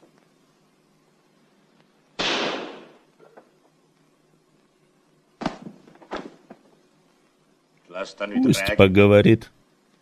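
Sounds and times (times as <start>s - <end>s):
pistol shot: 2.2s - 3.0s.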